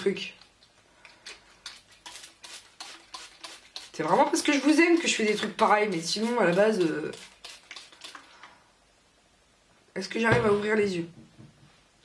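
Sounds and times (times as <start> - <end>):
spray bottle squirting: 1.3 - 8.3.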